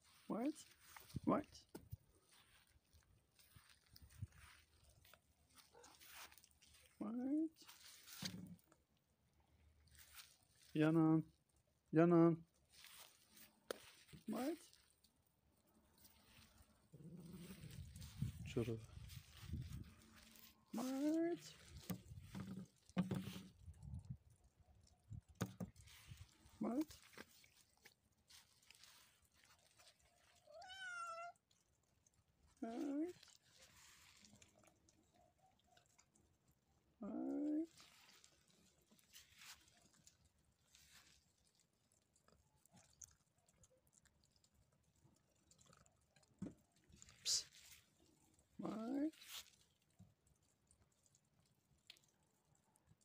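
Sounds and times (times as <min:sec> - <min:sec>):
rustling on grass: 0:00.0 - 0:08.6, 0:09.8 - 0:11.0, 0:12.6 - 0:15.1, 0:15.8 - 0:23.6, 0:25.7 - 0:31.2, 0:32.6 - 0:34.7, 0:37.7 - 0:41.6, 0:47.4 - 0:49.6
short cat meow: 0:30.5 - 0:31.4.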